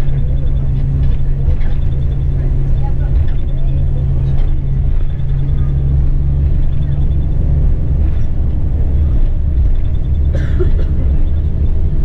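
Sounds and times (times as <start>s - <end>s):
bus engine and tyres rumbling: 0.0s - 12.0s
low hum: 0.0s - 12.0s.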